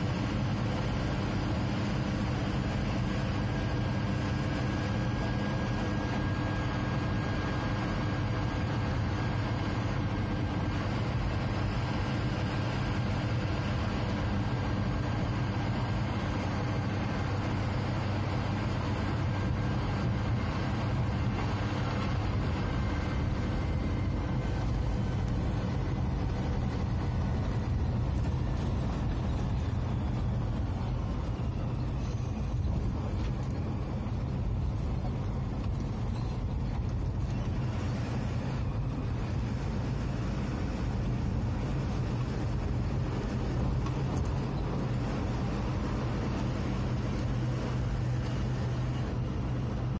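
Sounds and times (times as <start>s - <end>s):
road noise: 0.0s - 49.9s
truck diesel engine droning: 0.0s - 49.9s.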